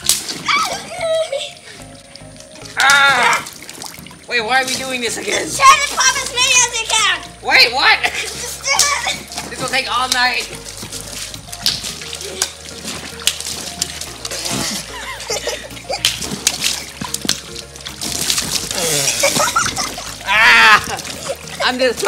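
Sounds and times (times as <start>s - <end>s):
water balloons bursting: 0.0s - 7.0s, 8.0s - 22.0s
background music: 0.0s - 22.0s
water splashing and sloshing: 0.0s - 22.0s.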